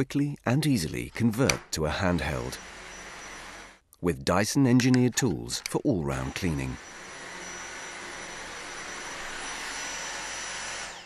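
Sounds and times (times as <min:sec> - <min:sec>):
cordless vacuum running: 0:02.4 - 0:03.8, 0:06.1 - 0:11.0.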